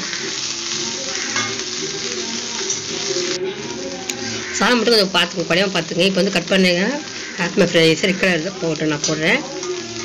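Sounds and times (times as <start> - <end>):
rice sizzling in a metal pan: 0.0 - 10.0
metal spatula stirring: 1.2 - 1.6.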